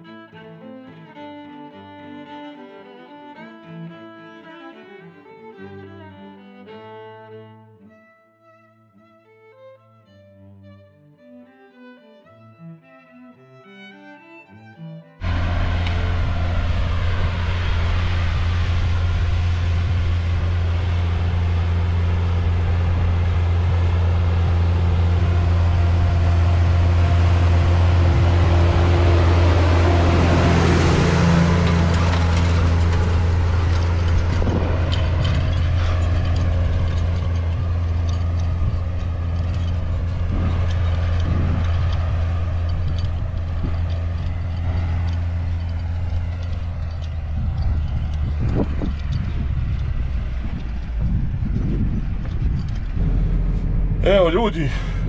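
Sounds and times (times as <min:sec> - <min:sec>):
tractor diesel engine under load: 0:15.2 - 0:55.0.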